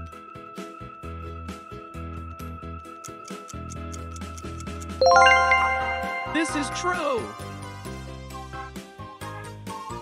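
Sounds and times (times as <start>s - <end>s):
quiz background music with beat: 5.0s - 7.9s
bright rising bell chime: 5.0s - 8.0s.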